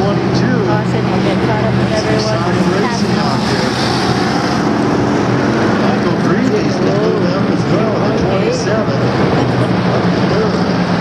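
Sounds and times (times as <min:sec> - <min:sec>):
people chattering: 0:00.0 - 0:11.0
race car engines droning: 0:00.0 - 0:11.0.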